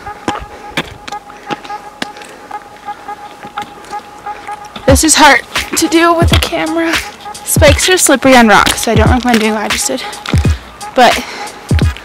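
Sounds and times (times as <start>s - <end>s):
thin steady tone: 0.0s - 8.5s.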